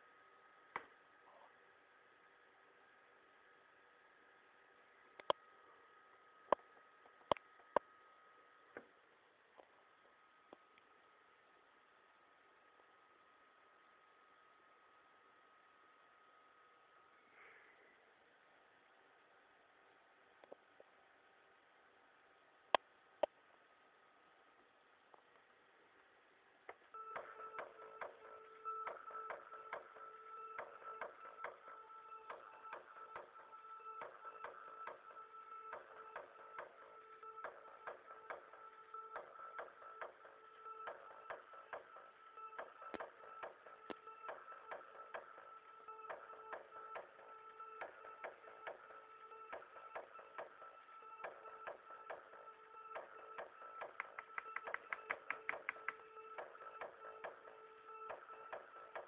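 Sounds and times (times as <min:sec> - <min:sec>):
steady held synth tones: 0:26.8 - 0:59.0.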